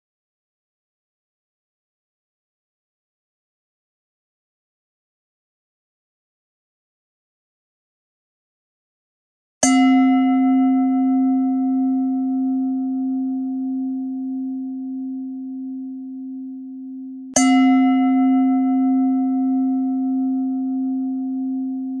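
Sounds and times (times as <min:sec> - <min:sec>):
singing bowl ringing: 0:09.6 - 0:22.0.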